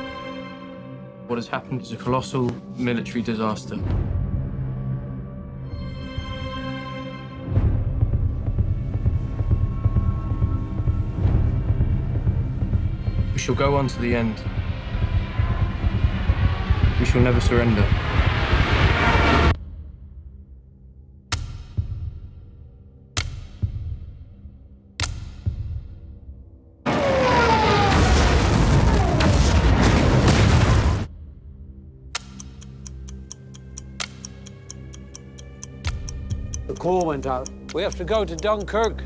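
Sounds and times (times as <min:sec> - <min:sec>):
faint low music drone: 0:00.0 - 0:26.8
clock-like ticking: 0:32.1 - 0:39.0.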